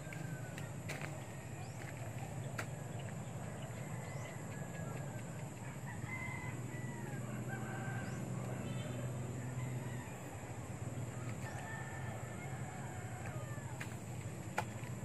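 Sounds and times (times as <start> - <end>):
distant rooster crowing: 0.0 - 15.0
steady low hum: 0.0 - 15.0.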